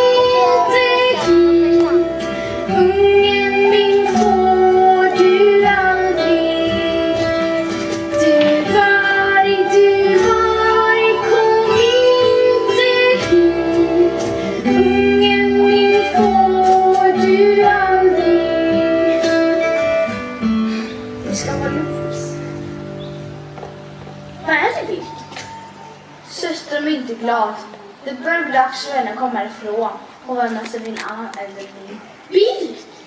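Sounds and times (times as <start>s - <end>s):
woman singing: 0.0s - 20.1s
guitar accompaniment: 0.0s - 27.2s.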